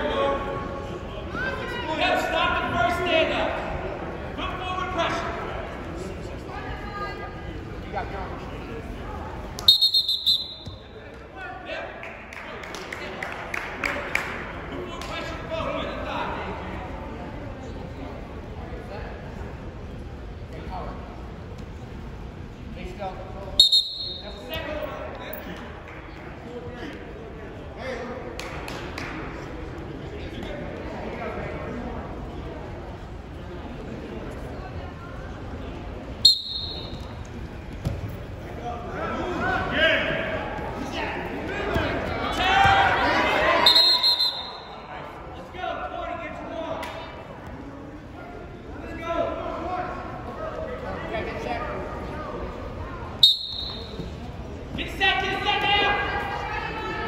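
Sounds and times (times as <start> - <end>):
referee's whistle blasts: 9.6 - 10.9, 23.6 - 24.5, 36.2 - 37.1, 43.6 - 44.8, 53.2 - 54.1
people shouting in echoing gym: 38.9 - 44.8
people calling out: 42.3 - 44.8.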